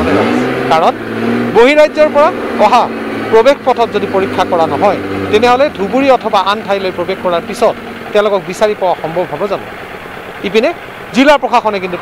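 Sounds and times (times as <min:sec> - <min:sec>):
vehicle engine humming: 0:00.0 - 0:12.0
man speaking: 0:01.6 - 0:09.6, 0:10.4 - 0:12.0.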